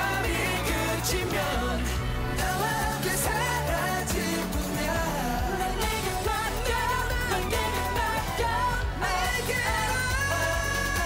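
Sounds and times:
dance-pop backing track: 0.0s - 11.0s
male voices singing: 0.0s - 11.0s.

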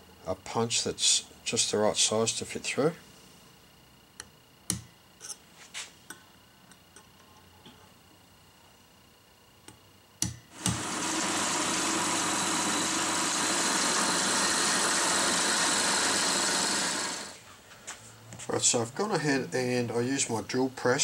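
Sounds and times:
drill press boring wood: 10.5s - 17.4s.

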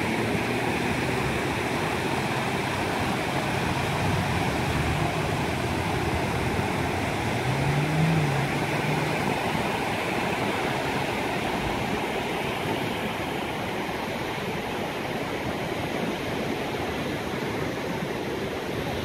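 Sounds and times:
ocean waves breaking on sand: 0.0s - 19.0s
faint low drone: 2.8s - 10.2s.

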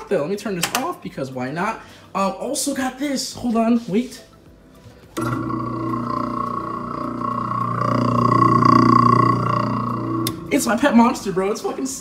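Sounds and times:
garbage disposal motor hum: 5.0s - 12.0s.

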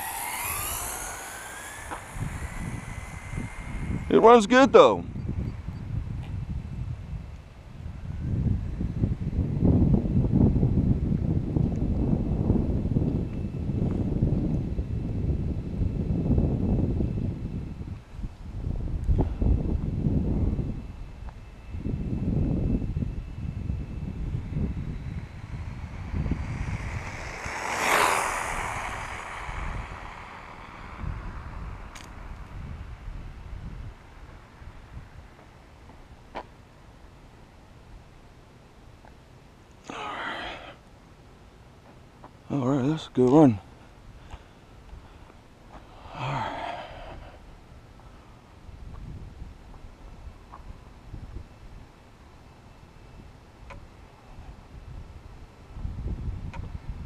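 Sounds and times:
rc car motor whine: 0.0s - 5.0s, 22.6s - 32.6s
wind gusting on microphone: 0.0s - 35.4s, 45.8s - 47.9s, 48.6s - 51.9s, 54.2s - 57.0s.

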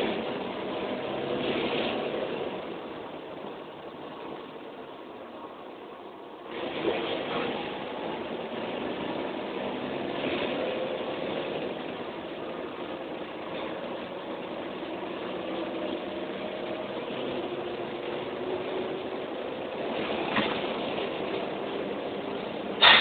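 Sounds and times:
bus diesel engine running: 0.0s - 23.0s
cabin rumble and rattle: 6.4s - 23.0s.

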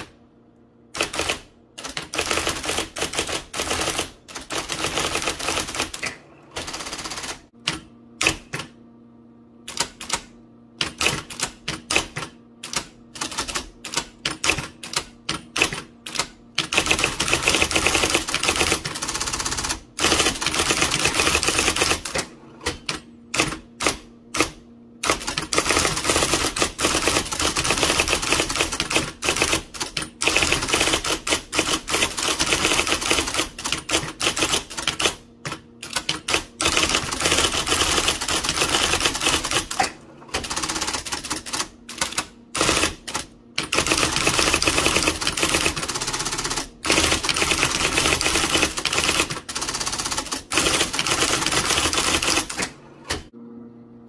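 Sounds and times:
electric typewriter typing: 0.0s - 0.2s, 0.9s - 8.8s, 9.6s - 53.3s.

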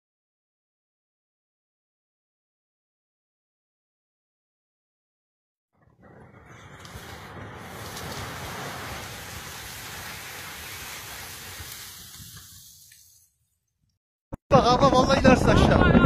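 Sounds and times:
snow sliding off metal roof: 5.8s - 13.6s.

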